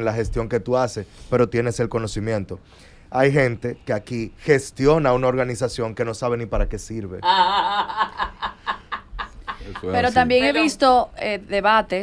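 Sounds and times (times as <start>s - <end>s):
person chuckling: 7.2s - 10.3s.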